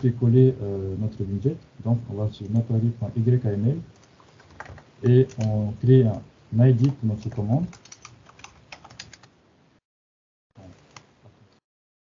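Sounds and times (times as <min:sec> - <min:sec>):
computer keyboard keys clicking: 0:03.9 - 0:05.6, 0:06.8 - 0:09.3.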